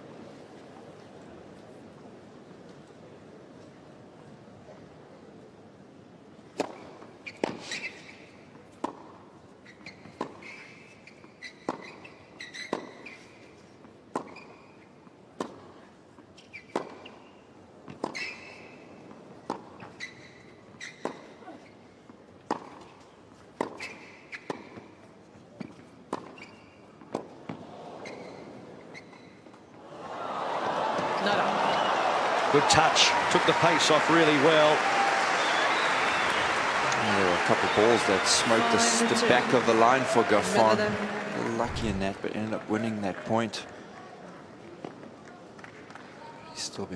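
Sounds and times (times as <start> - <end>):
tennis ball bouncing: 22.4 - 23.0.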